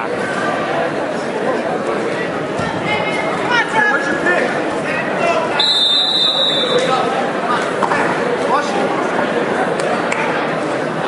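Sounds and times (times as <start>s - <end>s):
spectators' voices and shouts: 0.0s - 11.0s
referee's whistle: 5.6s - 6.9s.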